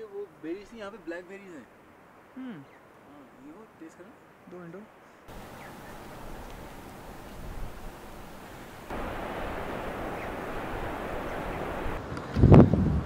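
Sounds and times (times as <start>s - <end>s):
wind blowing across microphone: 5.3s - 13.0s.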